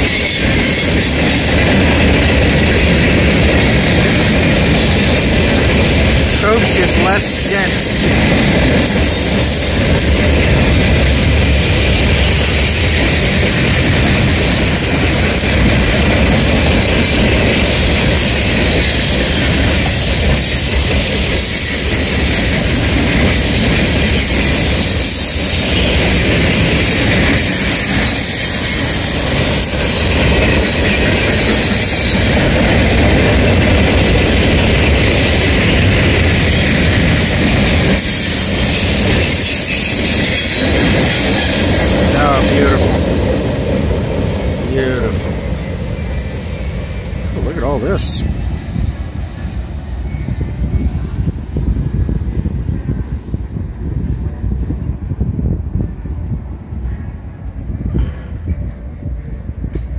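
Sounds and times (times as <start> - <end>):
wheels squealing: 0.0 - 47.4
train wheels rumbling on rail: 0.0 - 59.9.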